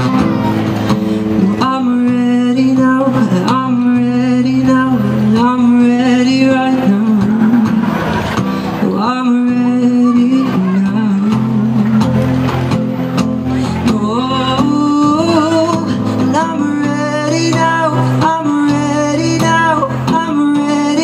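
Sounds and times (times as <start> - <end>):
acoustic guitar strumming: 0.0 - 21.0
young man singing: 0.0 - 21.0.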